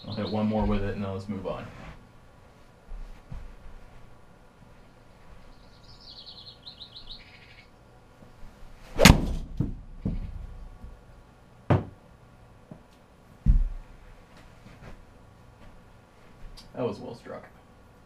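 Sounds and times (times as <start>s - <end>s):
light knocks and thuds: 0.6s - 1.0s, 9.0s - 11.0s, 12.7s - 13.9s
golf club striking ball: 8.9s - 10.2s.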